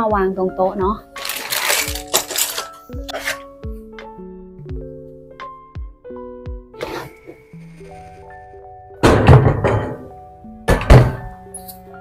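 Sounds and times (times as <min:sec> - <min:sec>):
metal shelf thunking on desk: 0:09.0 - 0:10.1, 0:10.7 - 0:11.3.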